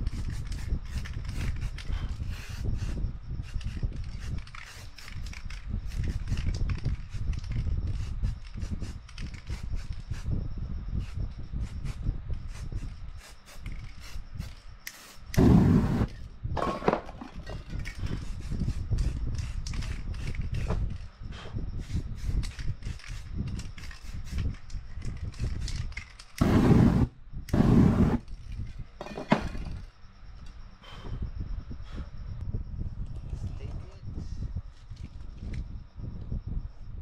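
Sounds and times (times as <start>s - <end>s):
spray can rushing bursts: 11.6s - 16.1s, 26.4s - 28.2s
fire crackling: 14.2s - 16.2s, 22.9s - 28.4s.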